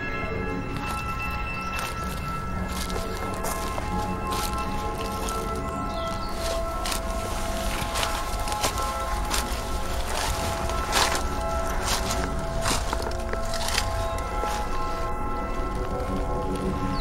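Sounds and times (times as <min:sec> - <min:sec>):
background music with held notes: 0:00.0 - 0:17.0
footsteps crunching on dry leaves: 0:00.4 - 0:17.0.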